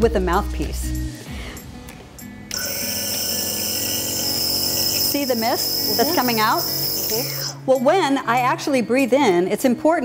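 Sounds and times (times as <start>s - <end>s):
air compressor humming: 2.5s - 7.5s.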